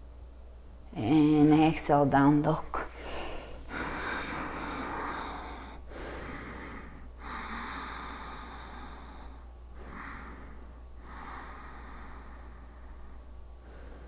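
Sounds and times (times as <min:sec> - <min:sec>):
woman breathing deeply: 0:02.8 - 0:14.0.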